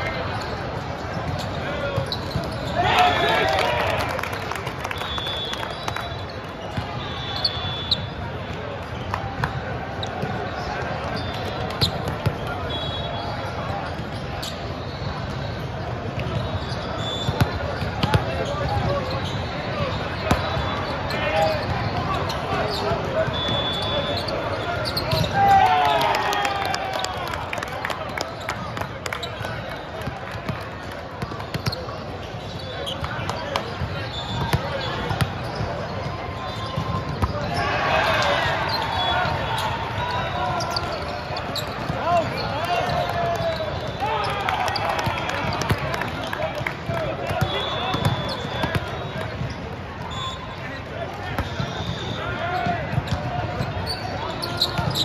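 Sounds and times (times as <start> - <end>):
people shouting: 2.7 - 4.0
referee whistle blasts: 4.8 - 8.3, 12.3 - 13.5, 16.3 - 17.8, 23.2 - 26.4, 34.0 - 35.6, 36.4 - 41.1, 42.3 - 45.0, 47.2 - 52.8.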